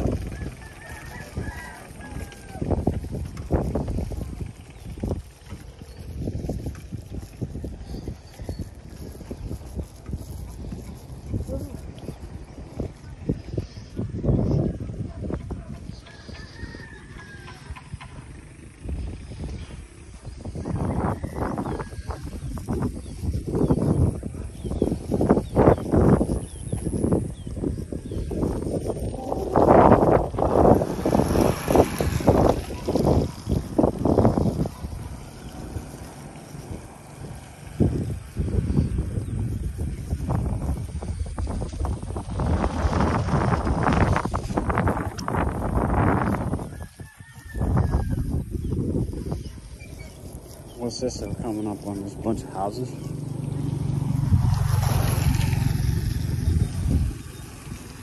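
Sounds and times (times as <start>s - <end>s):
roosters crowing: 0.0s - 4.2s, 15.8s - 19.6s, 20.3s - 24.0s, 24.8s - 51.1s.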